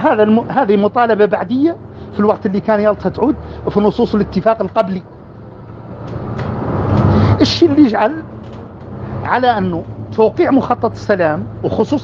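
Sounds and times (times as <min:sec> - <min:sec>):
motor vehicle passing: 0:00.0 - 0:12.0.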